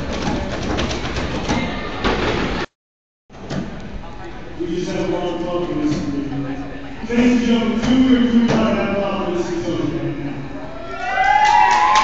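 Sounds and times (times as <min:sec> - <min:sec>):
clatter and knocks on hardwood floor: 0:00.0 - 0:02.5.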